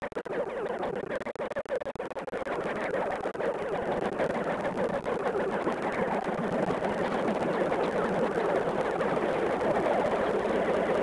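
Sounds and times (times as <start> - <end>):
scratchy crackling noise: 0.0 - 11.0.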